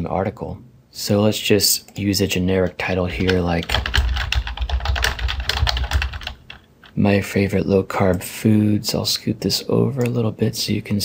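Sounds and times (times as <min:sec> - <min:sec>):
typing on computer keyboard: 0:03.2 - 0:07.0.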